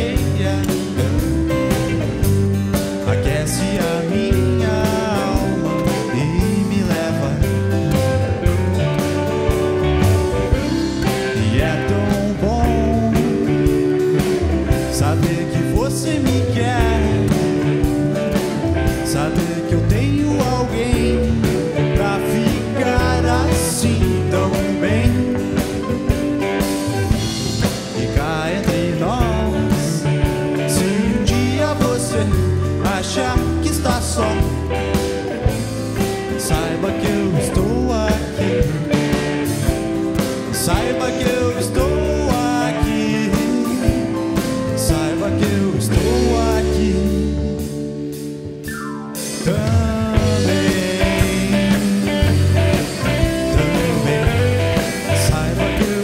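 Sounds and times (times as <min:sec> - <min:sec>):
strummed acoustic guitar: 0:00.0 - 0:47.8
man singing: 0:00.0 - 0:48.1, 0:49.2 - 0:56.0
drum kit: 0:00.0 - 0:56.0
electric bass: 0:00.0 - 0:56.0
keyboard: 0:00.0 - 0:56.0.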